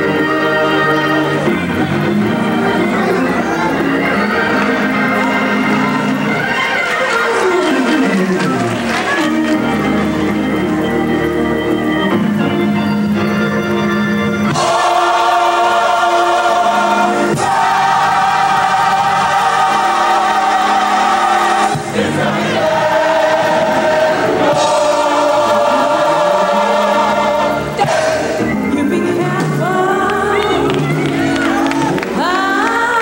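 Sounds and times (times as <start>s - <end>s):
gospel choir singing: 0.0s - 12.6s, 14.2s - 33.0s.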